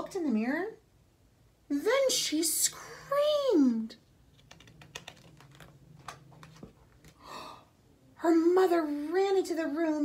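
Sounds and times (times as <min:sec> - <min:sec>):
book page rustling and turning: 0:05.1 - 0:07.2.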